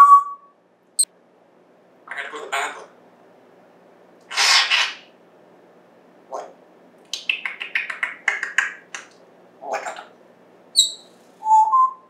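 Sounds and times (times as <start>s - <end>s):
parrot squawking: 2.1s - 2.9s, 4.3s - 5.1s, 7.2s - 9.0s, 9.6s - 10.2s, 10.8s - 11.2s
parrot clicking chirps: 7.1s - 9.2s.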